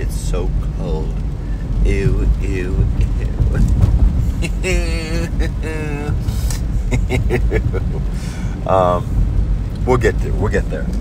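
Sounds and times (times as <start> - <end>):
car cabin rumble: 0.0 - 11.0
man moaning: 4.4 - 6.4.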